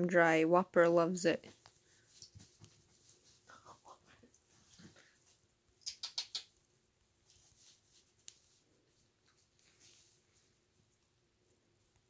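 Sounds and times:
paper pee pad rustling and scratching: 1.5 - 3.8, 7.2 - 10.7.

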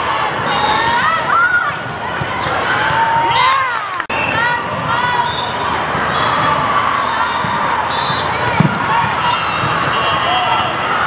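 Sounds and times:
voices of players and spectators: 0.0 - 11.0.

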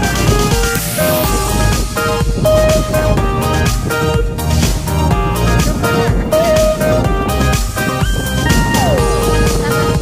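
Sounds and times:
electronic music with beat: 0.0 - 10.0.

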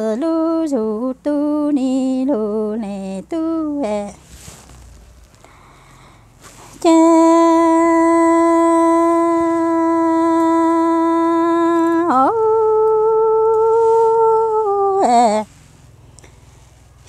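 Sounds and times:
woman singing unaccompanied: 0.0 - 4.2, 6.7 - 15.6.

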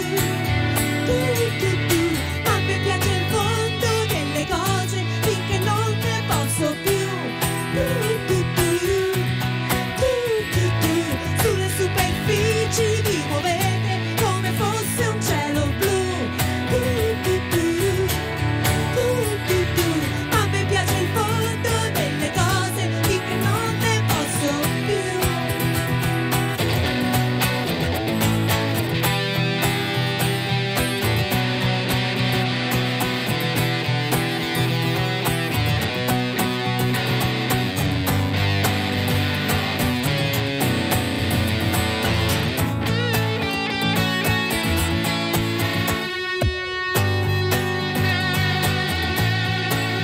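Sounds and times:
electric guitar playing lead: 0.0 - 50.0
strummed acoustic guitar: 0.0 - 50.0.

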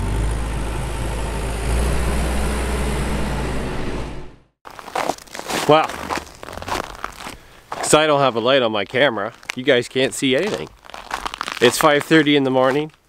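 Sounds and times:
combine harvester engine humming: 0.0 - 4.4.

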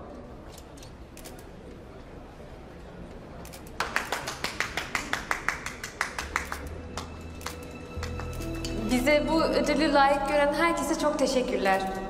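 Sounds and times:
people clapping: 3.7 - 8.9.

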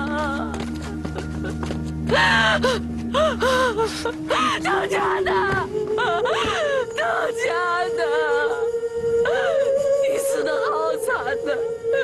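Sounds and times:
woman sobbing: 0.0 - 8.6, 9.2 - 12.0
woman wailing and crying: 0.0 - 12.0.

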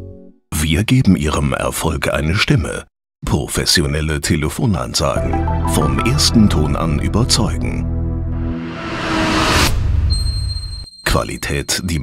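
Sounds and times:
low rumble: 6.3 - 10.4
rising whoosh: 7.9 - 10.5.

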